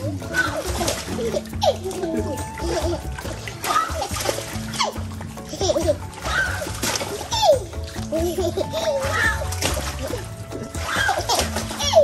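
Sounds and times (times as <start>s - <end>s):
small child's voice: 0.0s - 0.9s, 8.8s - 9.5s
background music: 0.0s - 12.0s
pool water splashing: 0.0s - 12.0s.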